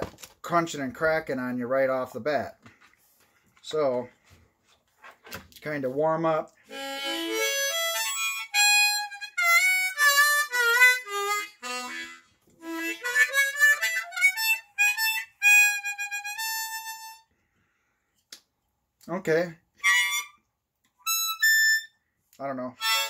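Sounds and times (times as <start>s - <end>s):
harmonica notes: 6.6s - 17.3s, 19.8s - 23.0s.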